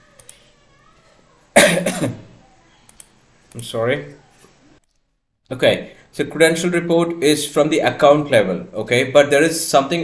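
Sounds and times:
faint clicks: 0.2 - 0.4, 2.8 - 3.7
man coughing: 1.6 - 2.2.

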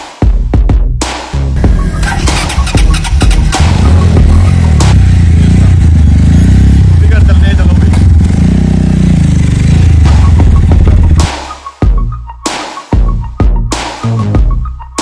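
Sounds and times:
motorcycle engine revving: 1.6 - 11.3.

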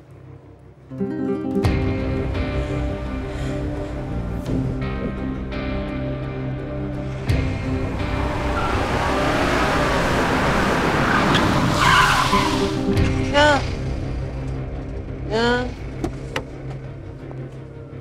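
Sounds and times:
music score: 6.6 - 14.6
vehicle approaching: 6.7 - 16.9
tyres skidding: 7.0 - 15.2.

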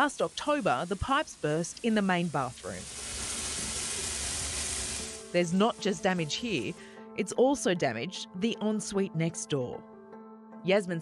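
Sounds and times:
water spraying from burst pipe: 0.0 - 6.9.

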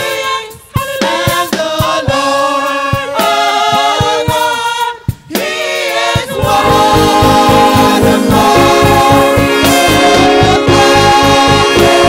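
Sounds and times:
backing singers: 0.0 - 12.0
band with steady beat: 0.0 - 12.0
sustained horn-like tones: 6.4 - 12.0.

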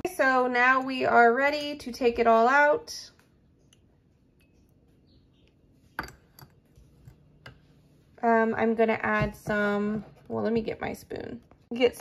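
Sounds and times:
metal infuser clinking on ceramic: 6.0 - 7.6.

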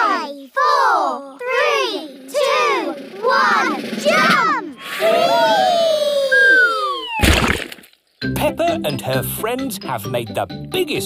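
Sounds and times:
cartoon children shouting: 0.0 - 7.3
splash into muddy puddle: 7.2 - 7.9.

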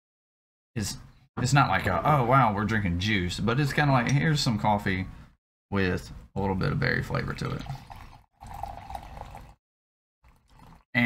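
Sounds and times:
coffee pouring into a mug: 7.2 - 9.6, 10.2 - 10.9.

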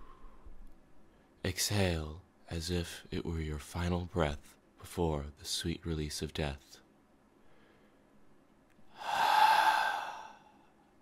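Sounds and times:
person exhaling: 8.9 - 10.8.

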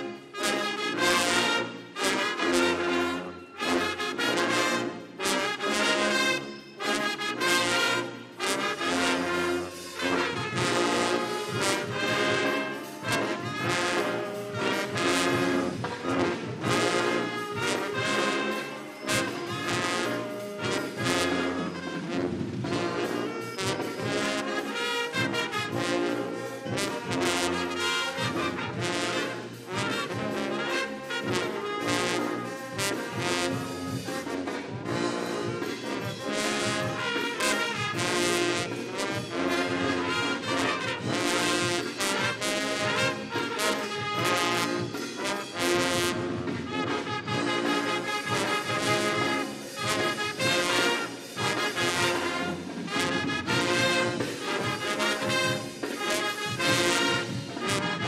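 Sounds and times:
brass instruments: 0.0 - 58.0
concert band playing: 0.0 - 58.0
drum kit beat: 0.0 - 58.0.

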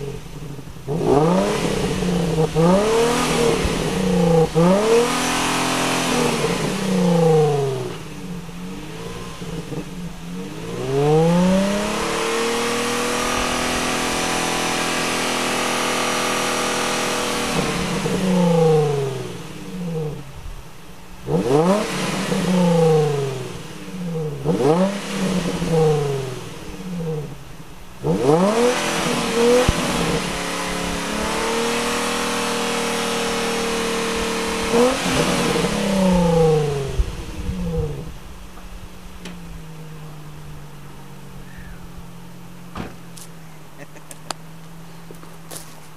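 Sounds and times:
car engine revving: 0.0 - 45.8.

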